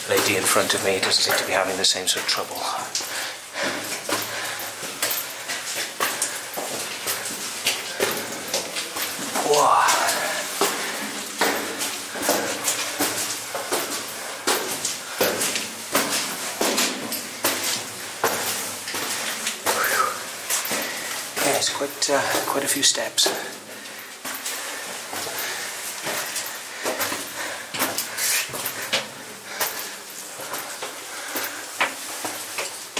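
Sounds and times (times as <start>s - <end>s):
footsteps on stone steps: 0.0s - 32.9s.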